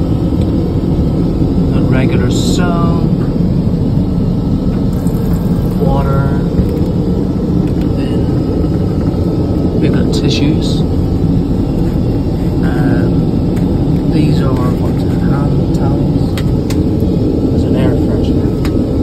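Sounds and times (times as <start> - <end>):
airliner cabin engine rumble: 0.0 - 19.0.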